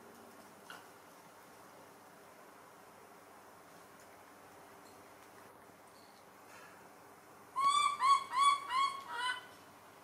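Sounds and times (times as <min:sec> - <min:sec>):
baby monkey coo calls: 0:07.6 - 0:09.5.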